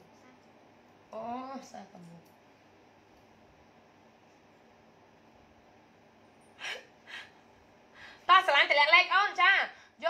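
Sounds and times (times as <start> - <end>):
woman laughing breathily: 6.6 - 7.4.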